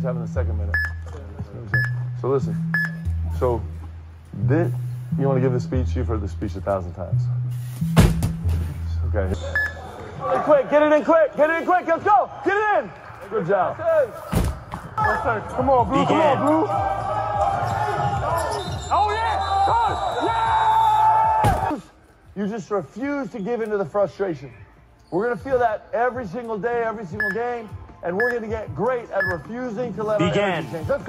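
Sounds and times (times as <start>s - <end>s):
short beep: 1.8s - 2.0s, 2.7s - 3.2s, 27.2s - 27.5s
dumbbell thud on pad: 8.0s - 8.5s.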